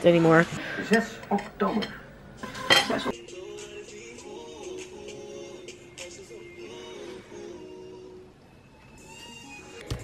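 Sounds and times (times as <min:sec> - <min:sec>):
soft background music: 0:02.4 - 0:10.0.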